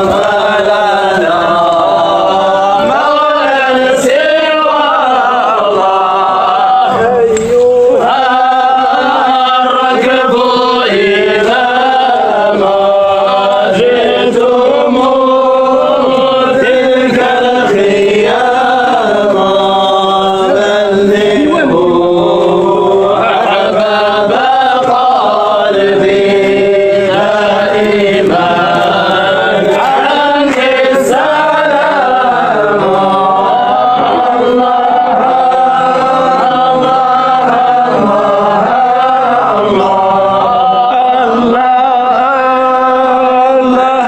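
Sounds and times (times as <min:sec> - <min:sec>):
men chanting a devotional hymn: 0:00.0 - 0:44.0.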